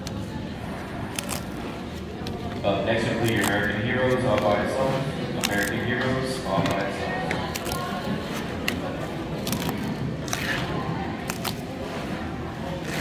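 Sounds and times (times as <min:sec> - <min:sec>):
chatter of people: 0:00.0 - 0:13.0
paper tabs snapping and ripping: 0:01.1 - 0:01.6, 0:03.2 - 0:04.6, 0:05.4 - 0:06.0, 0:09.4 - 0:11.6.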